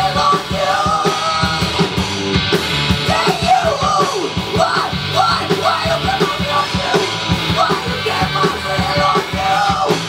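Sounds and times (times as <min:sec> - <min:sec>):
bass guitar: 0:00.0 - 0:10.0
drum kit beat: 0:00.0 - 0:10.0
electric guitars: 0:00.0 - 0:10.0.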